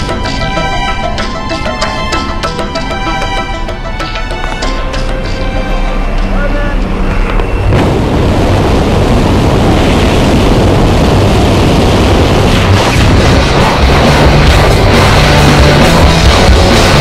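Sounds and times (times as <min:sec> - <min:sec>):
music: 0:00.0 - 0:07.8, 0:12.5 - 0:17.0
airplane noise: 0:00.0 - 0:17.0
wind rushing: 0:06.8 - 0:17.0.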